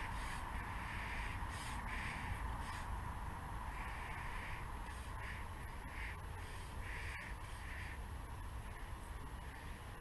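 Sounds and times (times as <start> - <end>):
bird calling: 0.0 - 2.9, 3.7 - 10.0
steady low rumble: 0.0 - 10.0.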